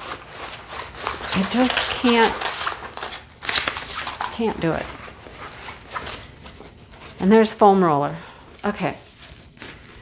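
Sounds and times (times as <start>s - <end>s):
canvas rustling and scraping: 0.0s - 7.5s, 8.7s - 10.0s.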